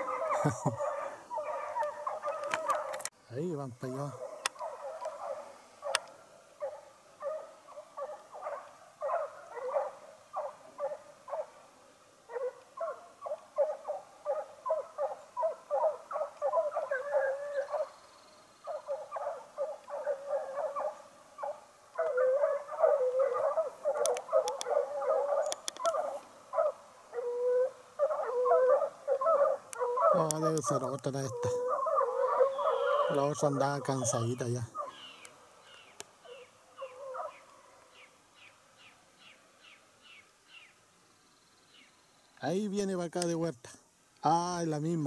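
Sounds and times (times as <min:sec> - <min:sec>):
distant hounds baying: 0:00.0 - 0:03.1, 0:03.8 - 0:40.7.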